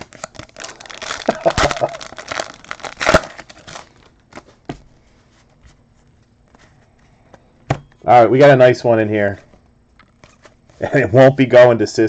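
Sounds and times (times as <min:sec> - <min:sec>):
foil ripping: 0:00.0 - 0:04.1
foil pack crinkling: 0:00.0 - 0:04.7.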